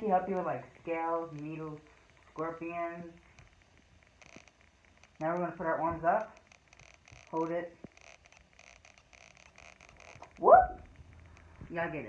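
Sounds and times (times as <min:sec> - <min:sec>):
person exclaiming whoop: 0:10.4 - 0:10.8.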